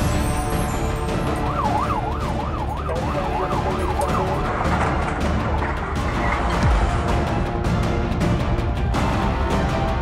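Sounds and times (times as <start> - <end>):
background music: 0.0 - 10.0
fire engine siren yelping: 0.7 - 4.8.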